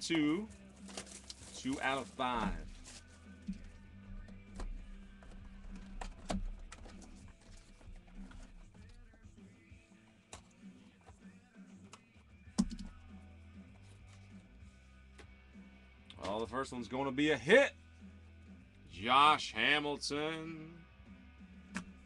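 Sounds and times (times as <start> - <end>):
faint background music: 0.0 - 22.0
cards clicking and tapping: 11.8 - 13.0.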